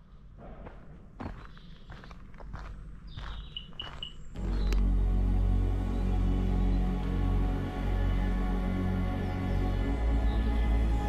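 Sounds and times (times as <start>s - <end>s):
footsteps on earth path: 0.3s - 5.0s.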